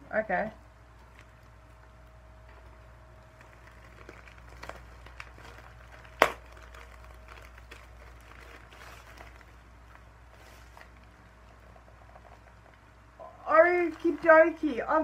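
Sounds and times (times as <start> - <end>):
low steady hum: 0.0 - 15.0
package rustling and crinkling: 1.0 - 15.0.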